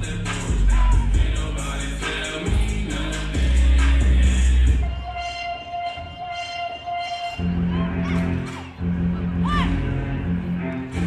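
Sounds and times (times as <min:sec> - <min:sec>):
heavy bass: 0:00.0 - 0:11.0
hip hop music: 0:00.0 - 0:11.0
held high note: 0:04.7 - 0:08.8.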